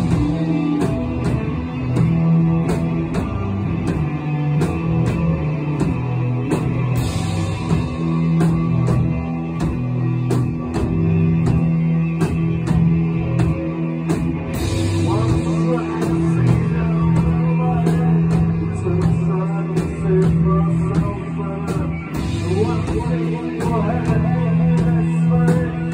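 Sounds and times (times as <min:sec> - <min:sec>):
electric guitars and bass: 0:00.0 - 0:25.9
steady drum beat: 0:00.0 - 0:25.9.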